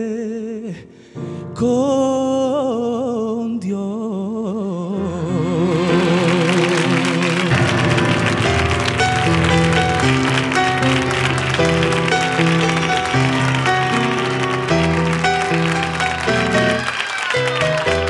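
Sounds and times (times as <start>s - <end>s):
audience applause: 5.6s - 18.0s
live band playing chords: 5.6s - 18.0s.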